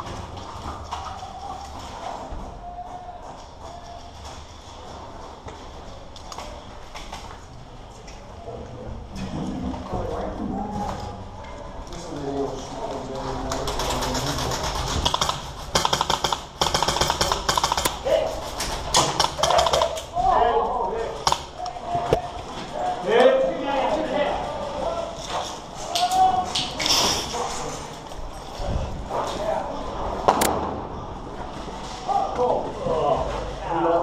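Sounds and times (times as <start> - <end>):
rapid clicking: 13.5 - 18.0.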